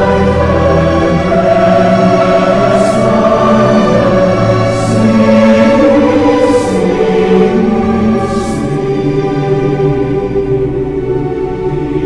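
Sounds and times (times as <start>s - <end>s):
choir singing slow carol: 0.0s - 12.0s.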